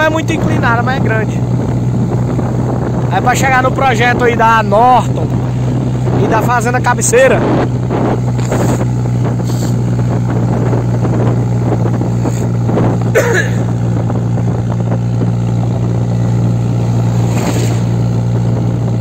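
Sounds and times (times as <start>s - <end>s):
diesel engine under load: 0.0s - 19.0s
road rush: 0.0s - 19.0s
wind on microphone: 0.0s - 19.0s.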